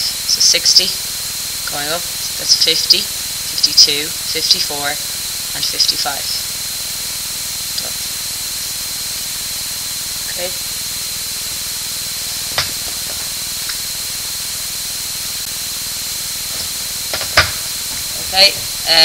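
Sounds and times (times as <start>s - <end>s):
recording hiss: 0.0s - 19.0s
thin high whine: 0.0s - 19.0s.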